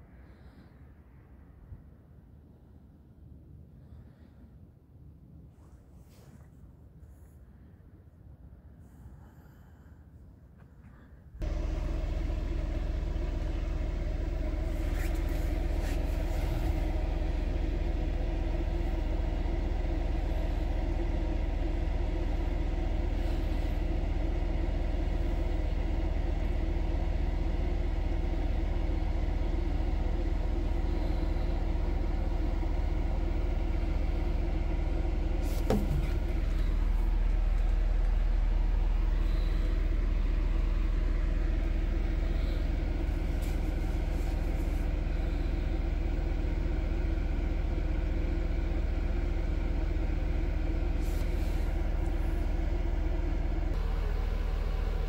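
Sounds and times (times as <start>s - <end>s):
low mechanical drone: 8.7s - 55.0s.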